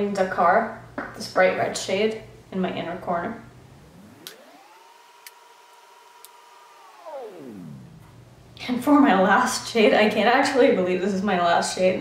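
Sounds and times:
electronic whine gliding in pitch: 0:02.6 - 0:09.7.

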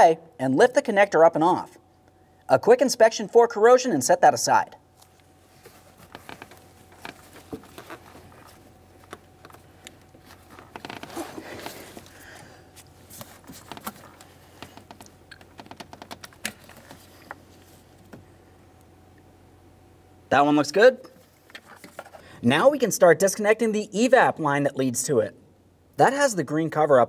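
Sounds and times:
rustling: 0:05.0 - 0:18.2.

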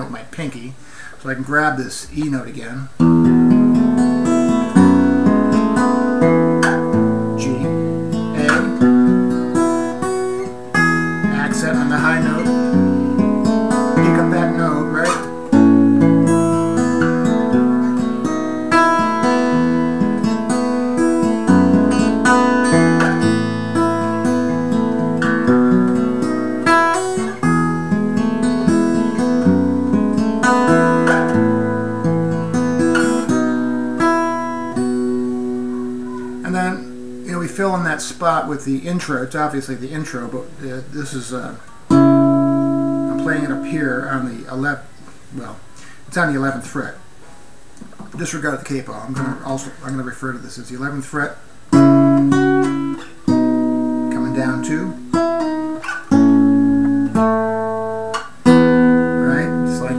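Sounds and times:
acoustic guitar strumming chords: 0:02.2 - 0:59.9.

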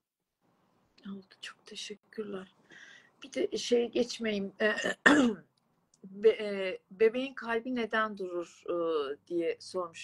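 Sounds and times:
person clearing throat: 0:04.8 - 0:05.5.

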